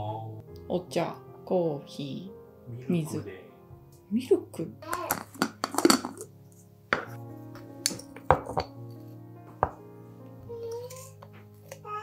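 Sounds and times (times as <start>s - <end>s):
soft background music: 0.0s - 12.0s
wooden spoon knocking glass jar: 5.0s - 6.2s, 7.9s - 8.8s.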